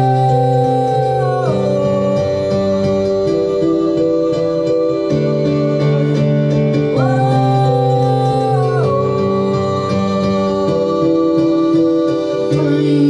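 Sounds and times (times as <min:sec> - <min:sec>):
electronic keyboard chords: 0:00.0 - 0:13.0
man singing a long note: 0:00.0 - 0:13.0.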